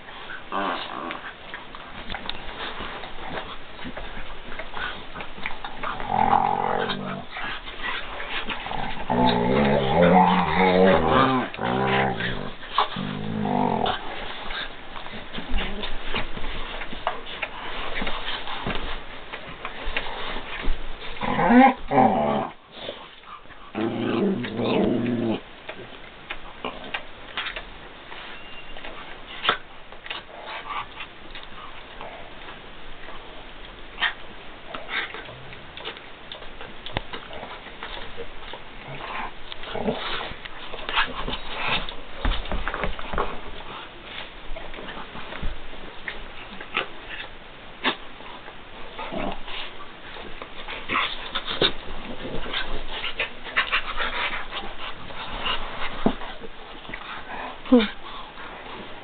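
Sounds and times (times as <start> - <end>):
scuffling and paw clicks: 0.0 - 21.9, 22.8 - 59.0
dogs growling in play: 0.0 - 27.7, 28.9 - 59.0.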